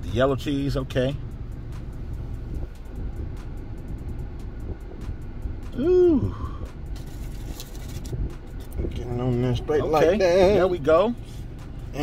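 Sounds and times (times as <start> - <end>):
low background rumble: 0.0 - 12.0
soft rustles: 7.0 - 8.8.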